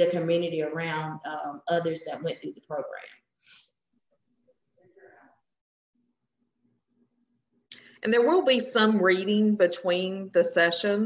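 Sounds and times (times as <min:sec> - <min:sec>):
person speaking: 0:00.0 - 0:03.7.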